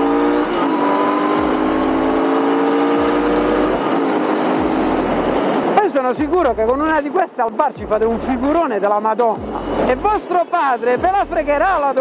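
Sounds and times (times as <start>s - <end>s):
motorcycle engine accelerating: 0.0s - 6.9s.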